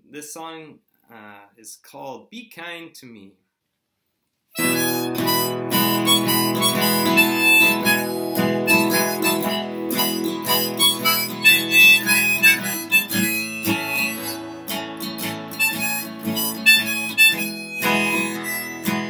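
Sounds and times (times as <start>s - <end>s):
harmonica: 4.6s - 19.0s
strummed acoustic guitar: 4.6s - 19.0s.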